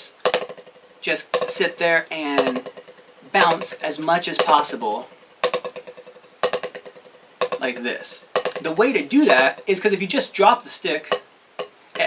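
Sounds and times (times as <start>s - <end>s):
drumstick buzz strokes on pad: 0.0s - 10.0s.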